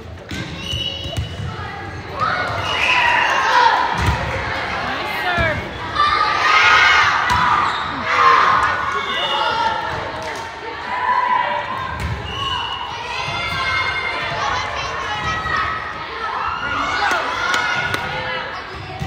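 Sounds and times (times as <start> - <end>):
volleyball hits: 3.8 - 4.6
girls shouting and cheering: 12.8 - 18.6.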